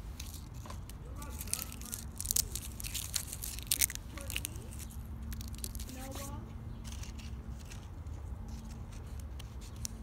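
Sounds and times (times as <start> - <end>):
dry bark crackling: 0.0 - 10.0.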